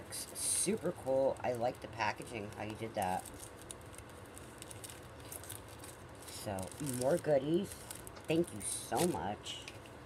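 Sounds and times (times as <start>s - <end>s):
plastic wrapper crinkling: 0.2s - 10.0s.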